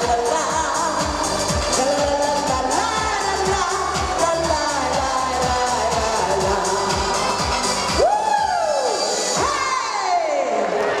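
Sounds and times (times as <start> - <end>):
live pop music with kick drum: 0.0 - 10.4
long whoops: 8.0 - 10.4
crowd cheering: 8.0 - 11.0.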